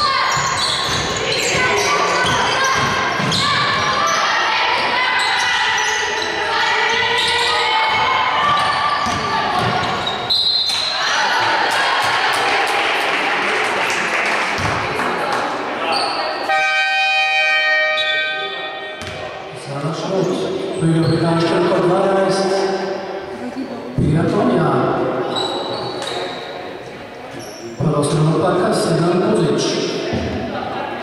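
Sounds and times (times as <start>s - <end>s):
players' voices echoing: 0.0s - 16.7s, 17.9s - 31.0s
basketball bouncing on hardwood floor: 0.3s - 1.7s, 7.9s - 10.0s
scoreboard horn: 16.5s - 18.6s.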